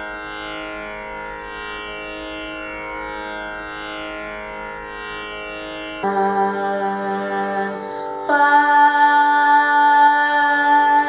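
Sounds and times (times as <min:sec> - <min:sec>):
woman singing a long note: 0:06.0 - 0:11.0.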